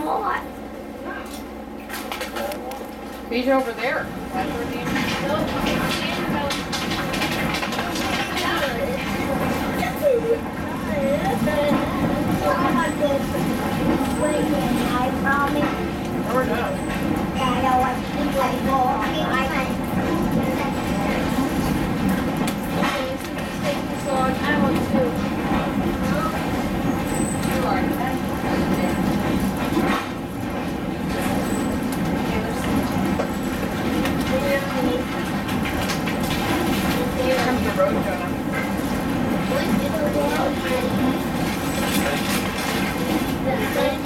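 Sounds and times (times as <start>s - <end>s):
wheels rumbling on rail: 0.0s - 44.0s.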